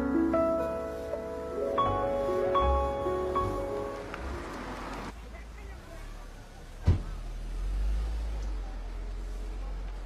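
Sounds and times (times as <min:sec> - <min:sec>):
car driving past: 0:02.6 - 0:05.2, 0:05.8 - 0:10.0
sharp thump: 0:06.8 - 0:07.2.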